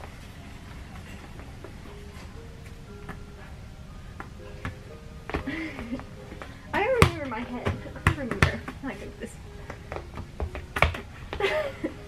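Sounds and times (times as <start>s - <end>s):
background music: 0.0s - 12.0s
ball bouncing thumps: 4.2s - 9.0s, 9.7s - 11.4s
person laughing: 11.4s - 12.0s.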